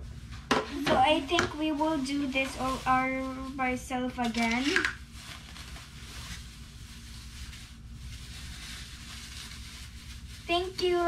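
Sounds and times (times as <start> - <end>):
steady low hum: 0.0 - 11.0
plastic bag rustling: 0.2 - 11.0.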